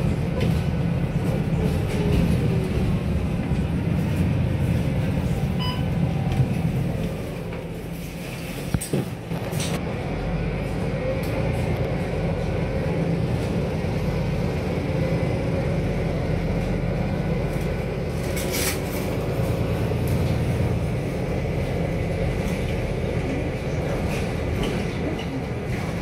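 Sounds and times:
bus engine and road rumble: 0.0 - 26.0.

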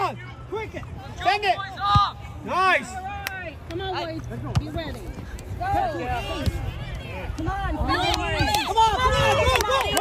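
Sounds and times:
players calling and shouting: 0.0 - 10.0.

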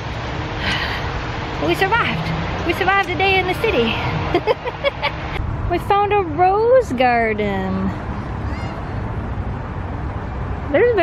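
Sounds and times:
low rumble: 5.3 - 10.5.

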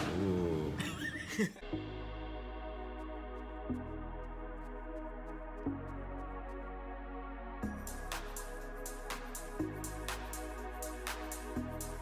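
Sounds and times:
electronic background music: 0.0 - 12.0.

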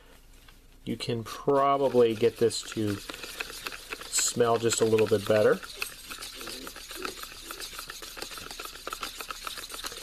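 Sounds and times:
plastic spoon scraping tub: 1.2 - 10.0.

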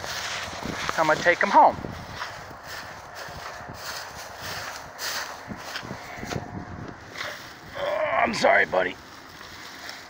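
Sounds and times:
footsteps through dry grass: 0.0 - 10.0.

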